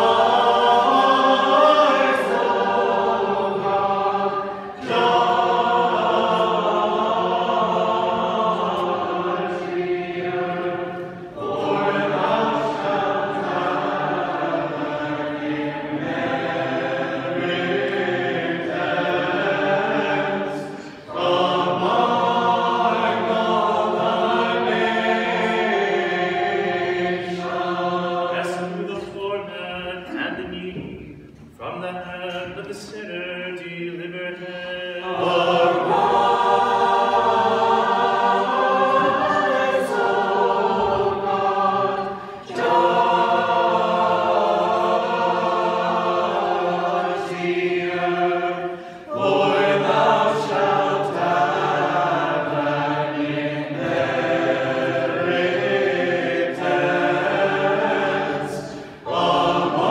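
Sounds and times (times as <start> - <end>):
mixed choir singing chant: 0.0 - 59.9.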